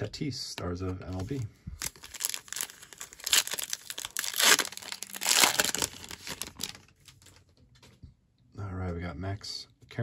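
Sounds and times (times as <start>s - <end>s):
foil wrapper crinkling and tearing: 1.8s - 7.4s.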